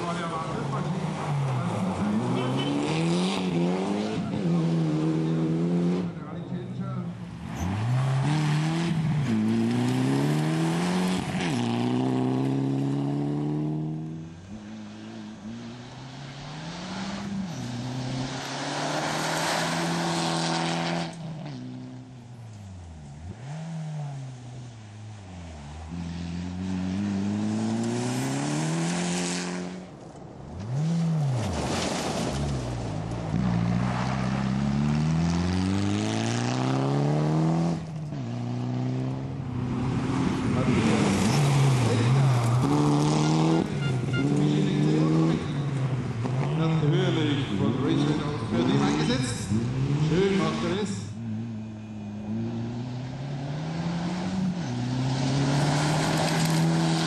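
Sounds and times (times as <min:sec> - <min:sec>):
rally car engine revving: 0:00.0 - 0:22.1, 0:22.8 - 0:57.0.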